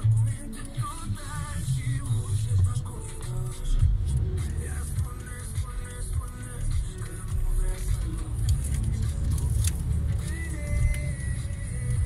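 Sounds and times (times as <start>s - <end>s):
engine and road rumble in car: 0.0s - 12.0s.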